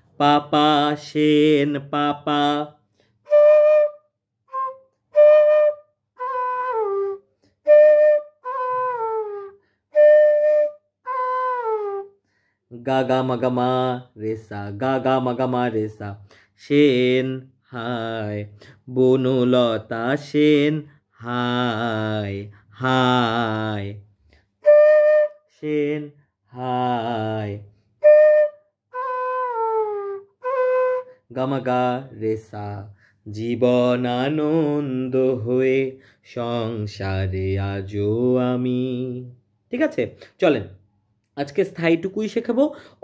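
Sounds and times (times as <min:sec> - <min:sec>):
bamboo flute playing: 0:03.2 - 0:12.2, 0:24.6 - 0:26.0, 0:28.0 - 0:32.1.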